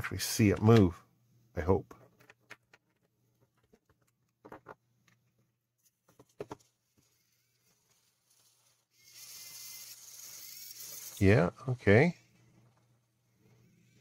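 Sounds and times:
small servo motor whirring: 8.2 - 11.2.

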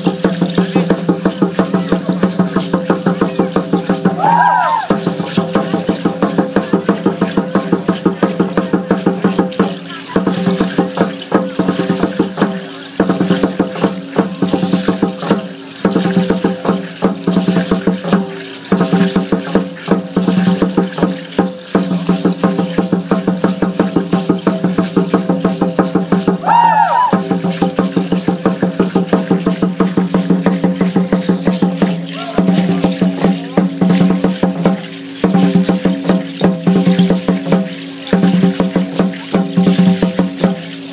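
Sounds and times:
sharp ceremonial drum beats: 0.0 - 40.9.

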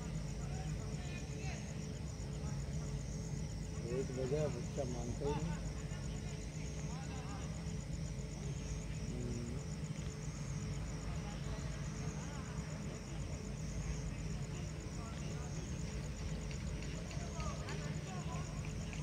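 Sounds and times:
faint voices: 0.0 - 19.0.

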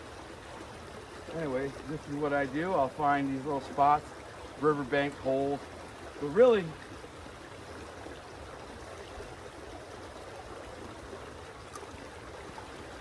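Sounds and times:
stream rushing over rocks: 0.0 - 13.0.

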